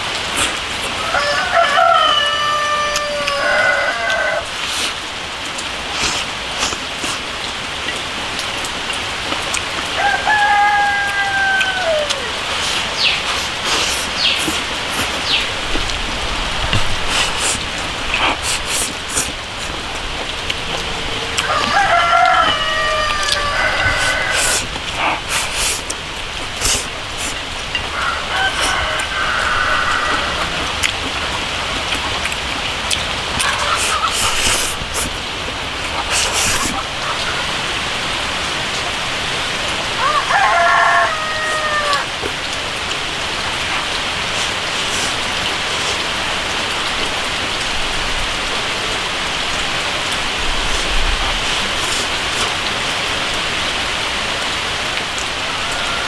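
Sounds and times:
steady rain falling: 0.0s - 56.0s
rooster crowing: 1.0s - 4.6s, 9.9s - 13.1s, 20.4s - 24.7s, 27.8s - 30.8s, 39.9s - 42.2s, 54.9s - 56.0s.

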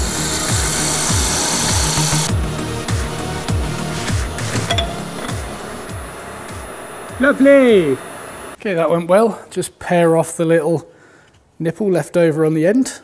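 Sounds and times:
sandpaper on turning wood: 0.0s - 2.3s
electronic music with bass notes: 2.2s - 8.1s.

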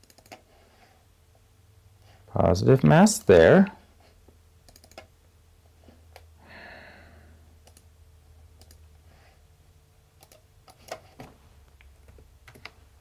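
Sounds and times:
mouse and keyboard clicks: 0.0s - 0.4s, 4.6s - 5.1s, 8.6s - 8.8s, 10.2s - 11.2s
low steady hum: 0.0s - 13.0s.

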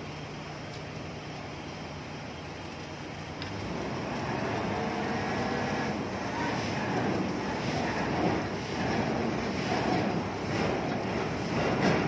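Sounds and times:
diesel construction machinery running: 0.0s - 12.0s.

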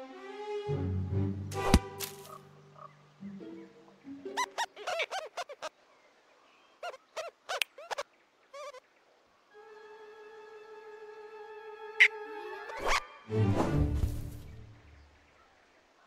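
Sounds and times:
low orchestral music: 0.0s - 4.5s, 9.5s - 15.1s
cartoon rodents giggling: 4.3s - 5.7s.

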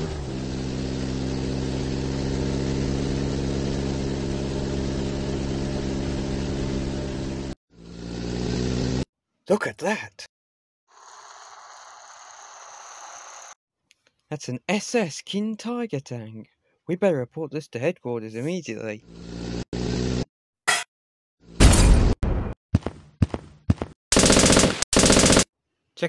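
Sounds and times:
machine-gun burst: 24.1s - 25.5s.

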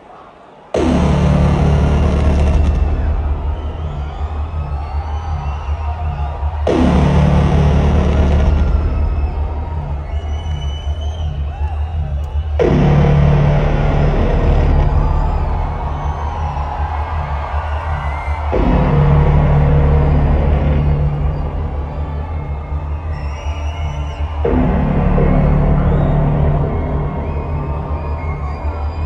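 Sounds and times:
crowd cheering and whistling: 0.0s - 29.0s
huge booming hit: 0.8s - 23.2s, 24.3s - 28.0s
arena intro music: 0.8s - 29.0s.

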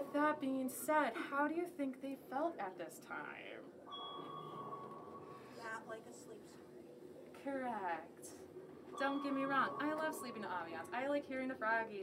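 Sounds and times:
sonar ping: 3.9s - 5.9s, 8.9s - 11.1s.

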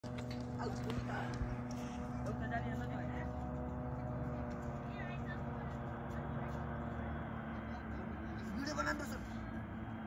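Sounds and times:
distant turboprop airliner drone: 0.0s - 10.0s.

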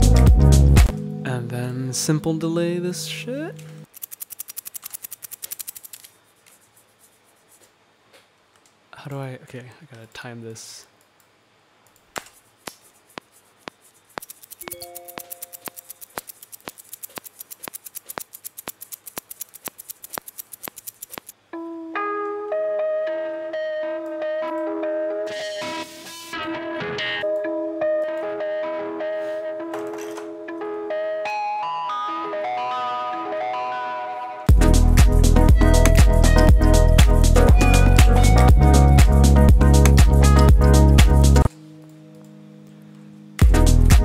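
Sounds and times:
fast ticking loop: 3.9s - 6.0s, 13.2s - 21.3s
mellow house music loop: 34.5s - 41.5s, 43.4s - 44.0s.

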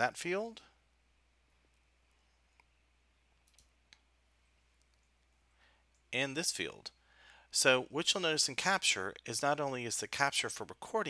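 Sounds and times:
faint mouse clicks: 1.6s - 4.1s.

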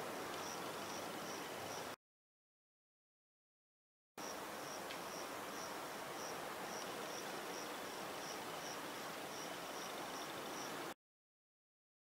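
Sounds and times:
faint steady hiss: 0.0s - 2.0s, 4.2s - 11.0s
cricket chirping: 0.4s - 2.0s, 4.2s - 10.8s.

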